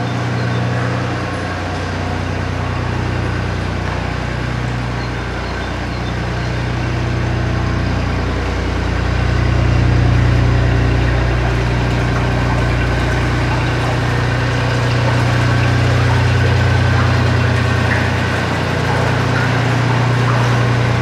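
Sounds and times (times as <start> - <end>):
boat engine running: 0.0 - 21.0.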